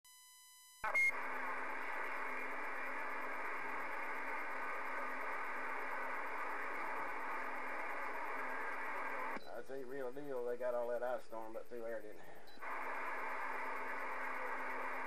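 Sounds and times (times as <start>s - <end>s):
radio static hiss: 0.8s - 15.0s.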